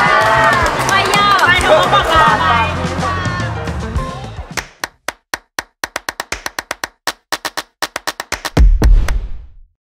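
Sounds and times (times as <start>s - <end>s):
music: 0.0s - 5.1s
dry percussive clicks: 4.6s - 8.6s.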